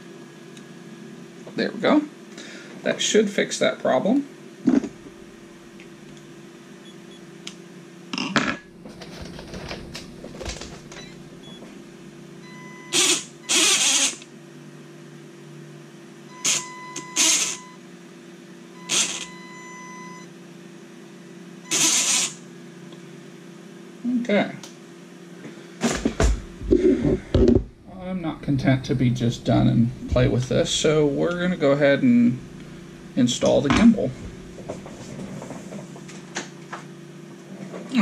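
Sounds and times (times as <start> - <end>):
faint steady motor whine: 0.0 - 38.0
electric motor throttle blips: 12.4 - 14.3, 16.3 - 17.8, 18.7 - 20.2, 21.6 - 22.4.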